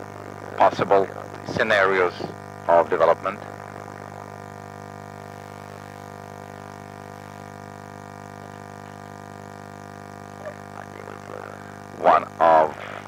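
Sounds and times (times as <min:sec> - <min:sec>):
electrical hum: 0:00.0 - 0:13.0.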